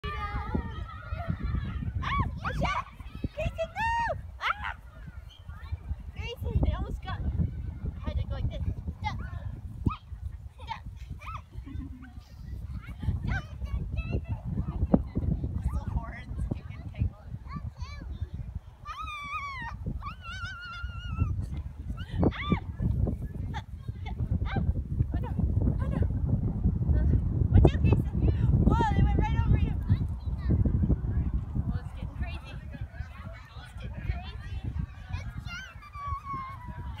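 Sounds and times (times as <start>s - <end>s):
wind rumbling on microphone: 0.0s - 37.0s
child high-pitched calls: 18.8s - 21.4s.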